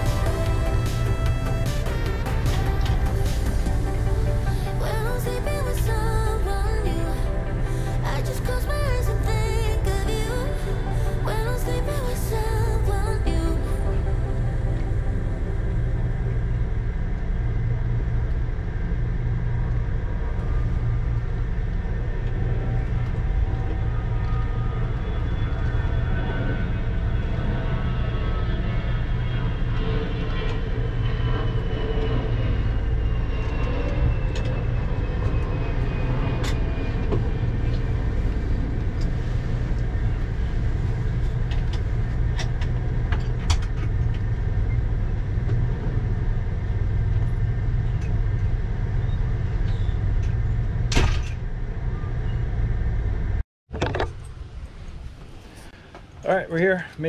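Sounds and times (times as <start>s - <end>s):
engine and road rumble: 0.0s - 57.0s.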